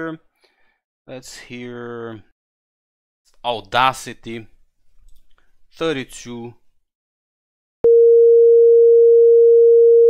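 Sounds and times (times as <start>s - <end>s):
steady sine-wave beep: 7.9s - 10.0s.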